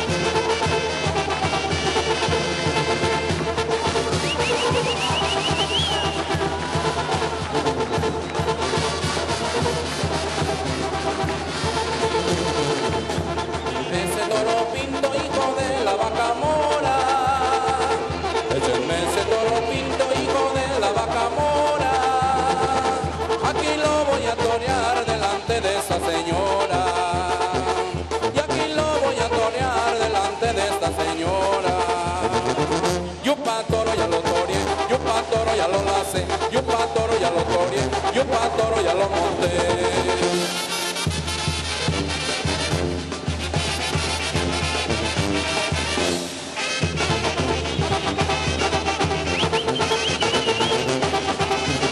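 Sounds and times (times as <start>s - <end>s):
band playing folk dance music: 0.0s - 51.9s.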